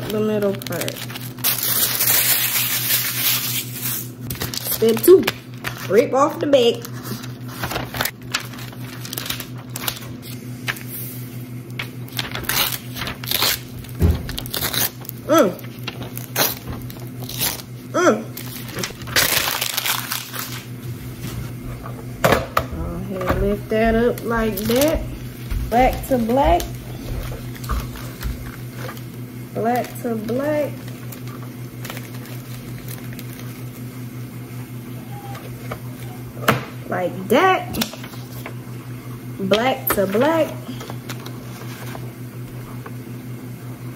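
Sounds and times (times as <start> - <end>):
paper rustling and crinkling: 0.0 - 17.7, 18.4 - 21.6, 24.1 - 29.1, 29.7 - 33.8, 37.8 - 38.6, 40.0 - 42.9
paper handling and light clicks: 6.7 - 10.9, 11.7 - 13.7
pulsing low hum: 20.8 - 33.4.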